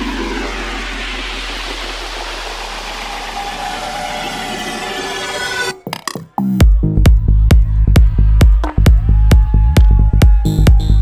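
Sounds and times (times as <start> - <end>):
deep bass drone: 0.0 - 5.4, 6.5 - 11.0
noisy synth wash: 0.0 - 5.8.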